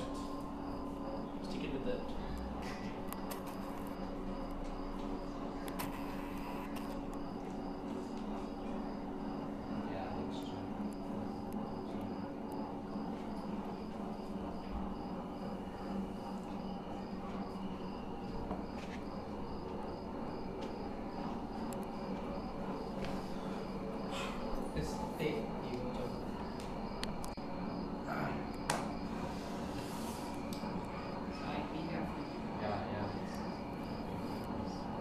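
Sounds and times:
low room hum: 0:00.0 - 0:35.0.

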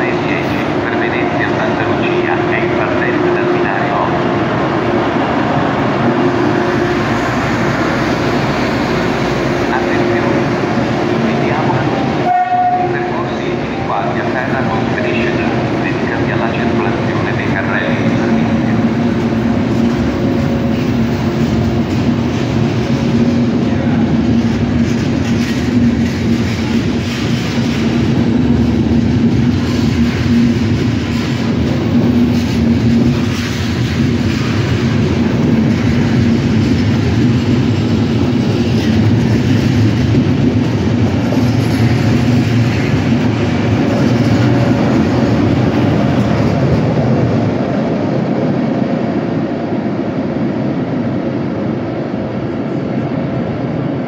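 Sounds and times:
train coaches rumbling past: 0:00.0 - 0:54.0.

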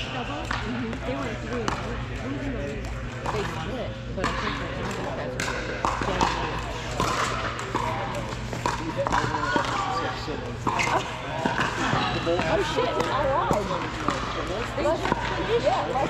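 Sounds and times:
paddles hitting plastic ball: 0:04.2 - 0:10.0.

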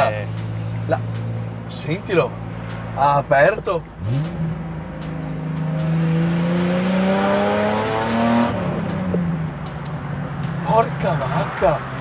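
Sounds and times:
car engine accelerating hard: 0:00.0 - 0:12.0.

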